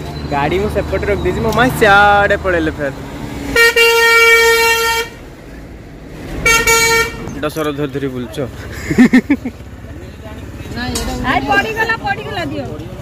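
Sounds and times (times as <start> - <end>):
truck horn blasts: 3.5 - 5.2, 6.4 - 7.3.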